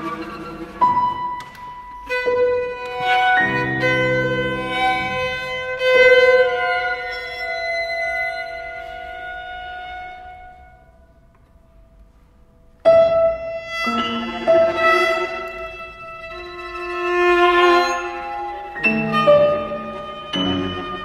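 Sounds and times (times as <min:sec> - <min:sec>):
chamber music strings and percussion: 0:13.8 - 0:21.0.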